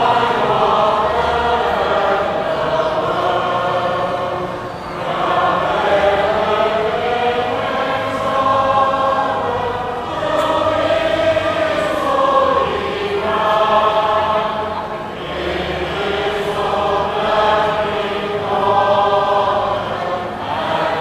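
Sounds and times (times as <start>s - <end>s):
congregation singing a hymn: 0.0s - 21.0s.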